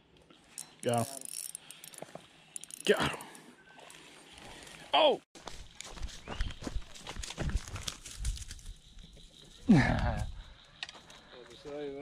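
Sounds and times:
fishing rod and reel handling: 0.1s - 4.4s.

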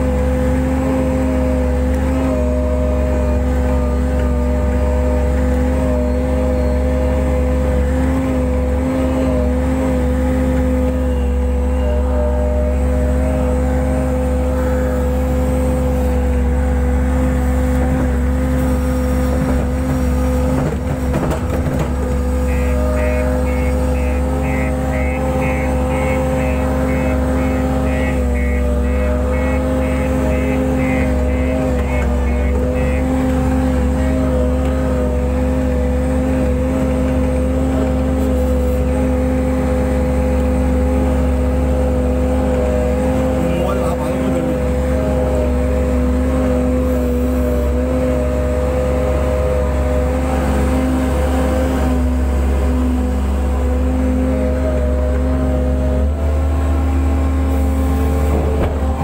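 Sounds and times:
diesel engine running: 0.0s - 59.0s
rapid high beeping: 22.4s - 33.2s.

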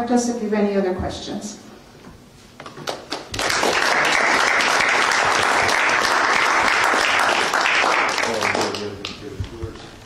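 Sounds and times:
audience applauding: 2.8s - 9.2s.

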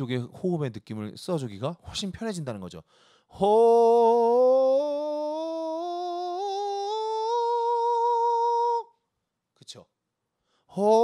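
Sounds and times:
man singing a sustained vowel: 3.3s - 9.0s, 10.7s - 11.0s.

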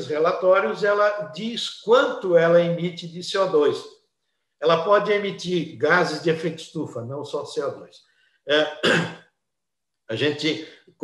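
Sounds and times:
man clearing his throat: 8.6s - 9.2s.

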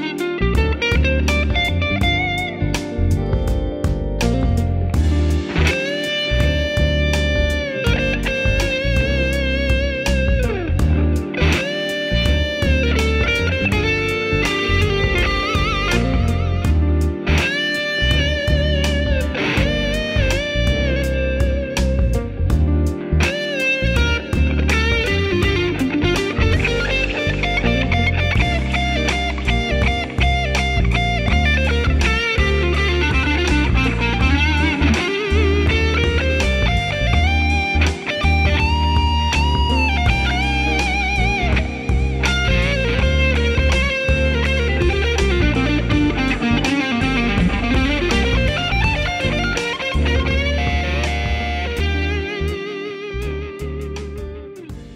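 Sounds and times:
backing track with bass line: 0.0s - 54.9s
electric guitar lead with bends: 0.0s - 54.9s.

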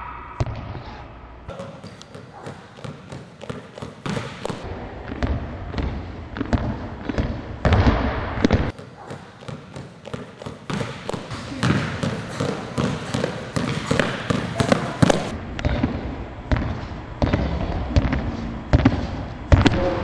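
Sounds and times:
basketball bouncing on hardwood floor: 1.5s - 20.0s.

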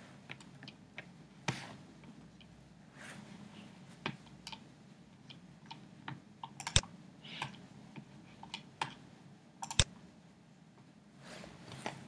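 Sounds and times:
computer keyboard clicks: 6.4s - 7.6s, 9.6s - 9.9s.

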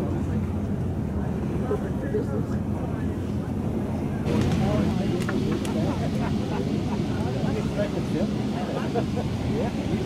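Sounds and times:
boat engine drone: 0.0s - 10.0s
voices chattering: 0.0s - 10.0s.

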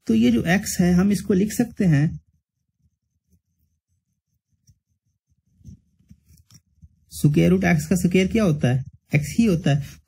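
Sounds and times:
ballpoint pen writing on paper: 2.2s - 7.1s.

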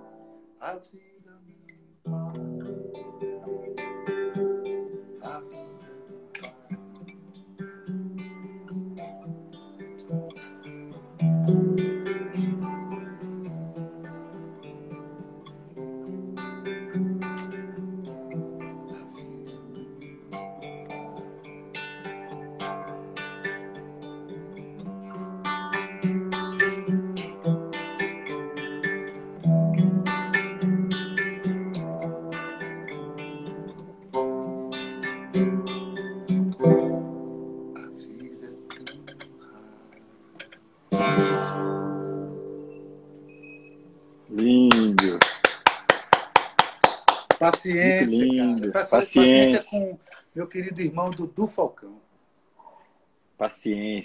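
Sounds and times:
solo acoustic guitar: 0.0s - 51.7s.

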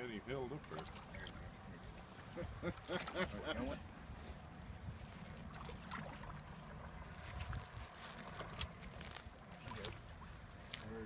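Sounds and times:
water sloshing and splashing: 0.5s - 10.8s
wind rumble on microphone: 3.8s - 10.8s.

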